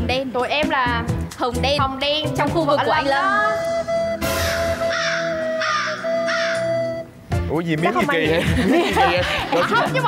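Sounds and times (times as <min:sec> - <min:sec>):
background music: 0:00.0 - 0:10.0
crow cawing: 0:04.5 - 0:06.8.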